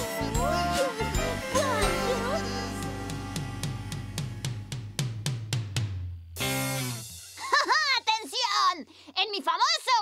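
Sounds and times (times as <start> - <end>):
short held chord: 0.0 - 4.8
drum kit strikes: 1.3 - 7.5.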